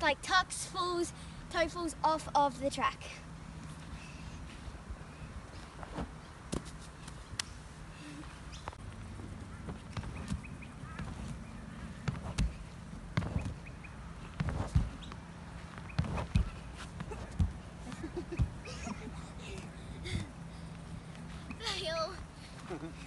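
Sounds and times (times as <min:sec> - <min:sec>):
body thudding on air track: 0:09.6 - 0:20.4.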